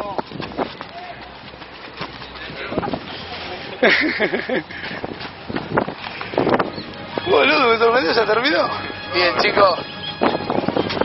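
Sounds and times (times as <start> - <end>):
outdoor background noise: 0.0 - 11.0
person laughing: 3.7 - 5.0
indistinct voices: 6.5 - 11.0.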